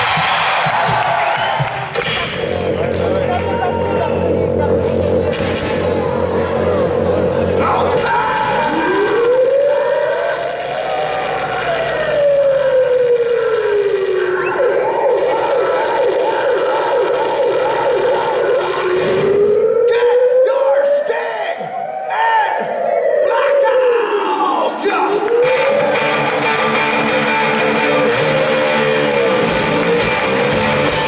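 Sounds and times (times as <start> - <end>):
pulsing electronic backing: 1.6 - 20.4
siren-like wail over pa: 2.3 - 29.9.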